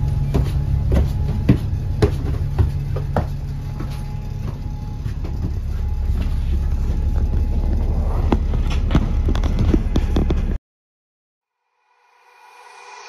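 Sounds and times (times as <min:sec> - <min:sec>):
bus diesel engine running: 0:00.0 - 0:10.6
rattles and knocks from bus body: 0:00.0 - 0:10.6.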